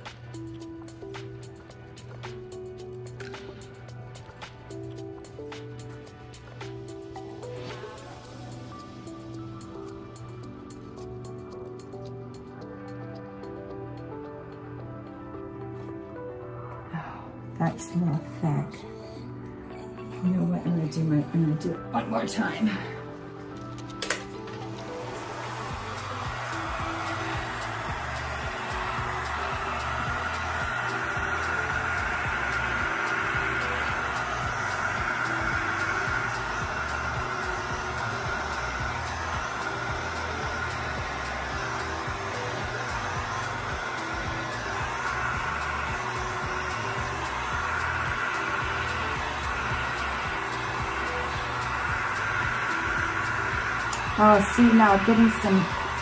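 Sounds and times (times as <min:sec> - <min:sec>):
background music: 0:00.0 - 0:56.0
heat gun blowing hot air: 0:24.0 - 0:56.0.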